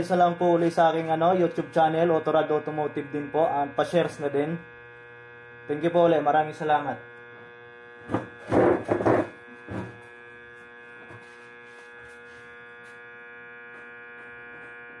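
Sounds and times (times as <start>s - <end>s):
armature tester humming: 0.0s - 15.0s.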